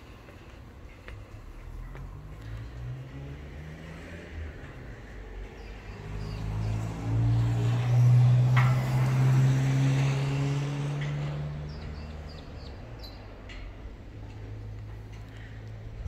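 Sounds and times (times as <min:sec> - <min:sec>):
diesel truck passing: 0:00.1 - 0:16.0.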